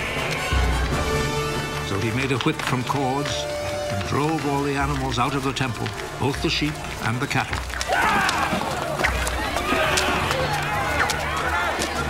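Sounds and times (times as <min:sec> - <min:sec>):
people shouting: 0:00.0 - 0:01.3, 0:07.7 - 0:12.0
running footsteps: 0:00.0 - 0:12.0.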